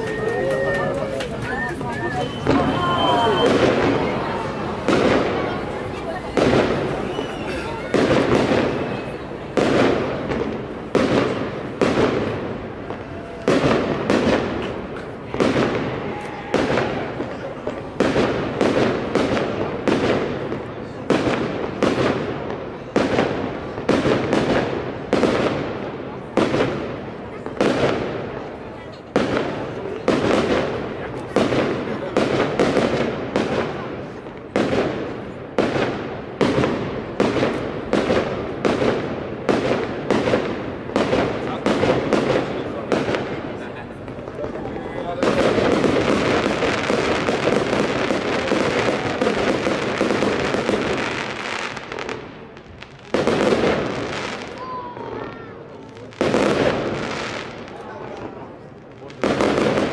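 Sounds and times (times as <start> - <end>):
fireworks bursting: 0.0 - 59.9.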